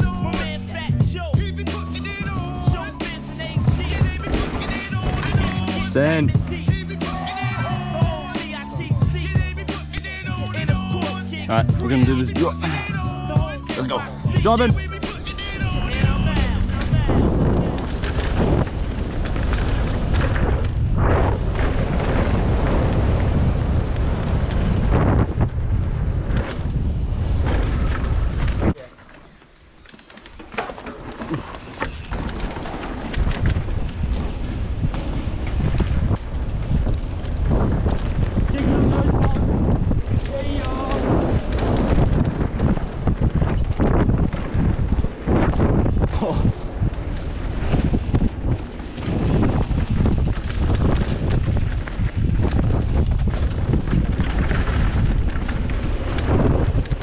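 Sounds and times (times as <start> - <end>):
bike tyres rumbling and rattling: 0.0 - 57.0
wind buffeting microphone: 14.3 - 28.8, 32.0 - 57.0.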